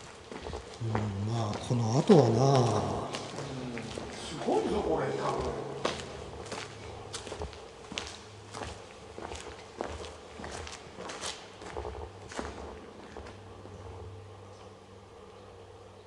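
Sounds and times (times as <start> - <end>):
footsteps on hard floor: 0.0 - 13.4.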